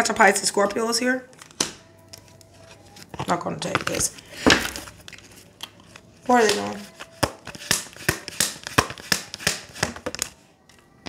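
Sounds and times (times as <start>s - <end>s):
cards shuffled and tapped: 1.4s - 10.8s.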